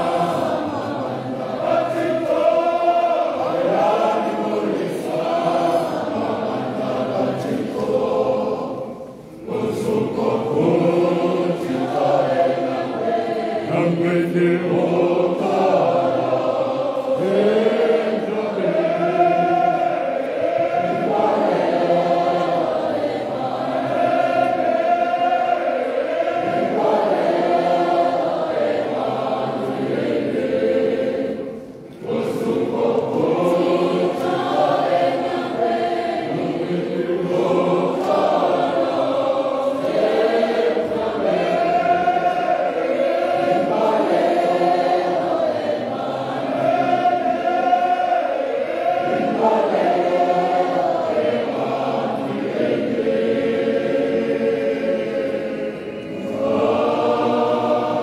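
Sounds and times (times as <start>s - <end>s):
choir singing a church song: 0.0s - 58.0s.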